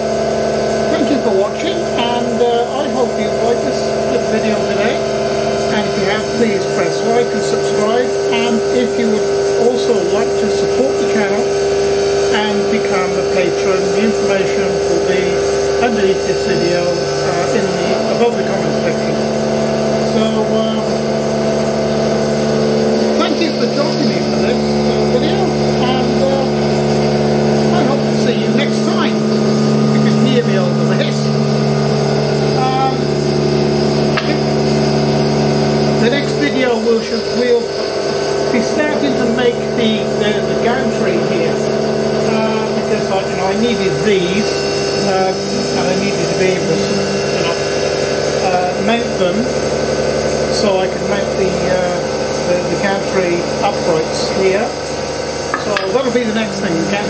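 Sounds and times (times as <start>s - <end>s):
steady hum shifting pitch: 0.0s - 57.0s
man talking: 0.8s - 5.1s, 5.7s - 11.6s, 12.3s - 21.3s, 22.9s - 33.4s, 35.8s - 37.8s, 38.5s - 49.6s, 50.5s - 54.8s, 55.6s - 57.0s.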